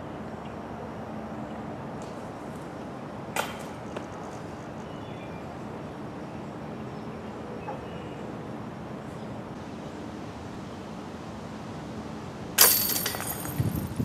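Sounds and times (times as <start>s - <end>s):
disc clanging metal basket: 12.6s - 14.0s.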